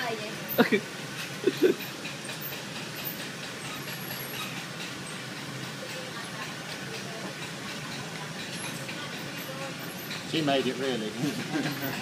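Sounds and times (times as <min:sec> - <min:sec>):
potter's wheel spinning: 0:01.6 - 0:12.0.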